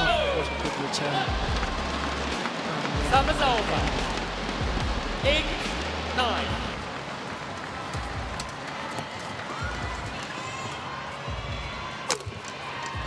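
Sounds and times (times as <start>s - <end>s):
crowd murmur: 0.0s - 13.0s.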